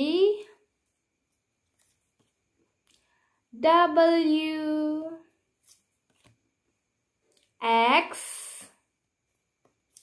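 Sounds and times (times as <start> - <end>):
paper flashcards rustling: 1.6 - 2.6, 5.6 - 6.4.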